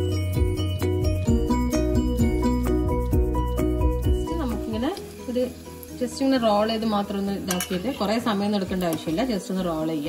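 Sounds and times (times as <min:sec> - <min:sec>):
background music: 0:00.0 - 0:10.0
food sizzling in oil: 0:00.0 - 0:10.0.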